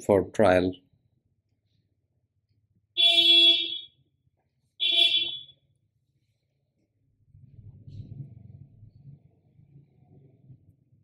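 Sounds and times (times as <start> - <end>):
buzzy horn beeps: 4.8 - 5.5.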